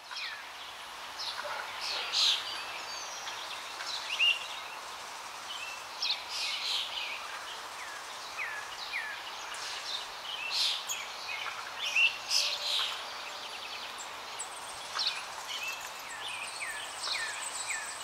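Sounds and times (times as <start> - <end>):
steady hiss: 0.0 - 18.0
birds chirping: 0.1 - 18.0.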